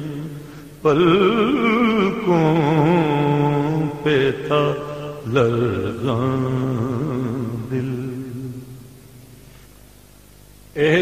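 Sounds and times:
person singing with vibrato: 0.0s - 9.0s.

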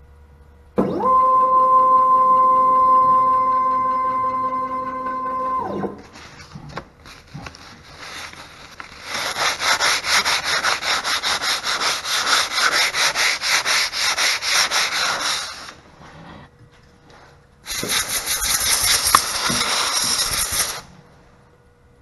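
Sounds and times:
sandpaper rubbing on board: 7.6s - 15.8s, 17.7s - 20.9s.

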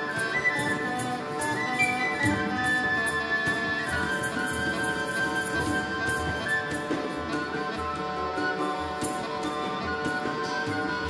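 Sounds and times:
bagpipes with drone: 0.0s - 11.0s
hand drum strokes: 0.0s - 11.0s.

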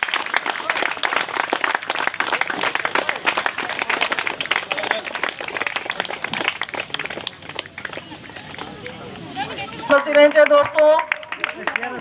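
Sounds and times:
crowd applauding: 0.0s - 9.2s, 9.9s - 12.0s.

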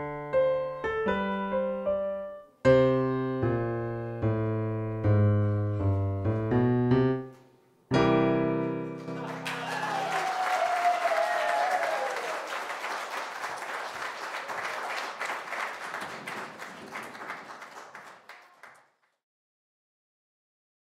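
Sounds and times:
piano chord ringing: 2.7s - 9.3s
person cheering: 9.0s - 12.6s
audience applauding: 9.0s - 19.2s.

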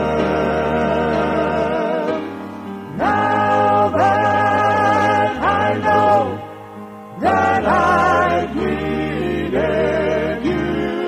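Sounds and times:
male quartet singing in harmony: 0.0s - 11.0s
musical accompaniment: 0.0s - 11.0s.

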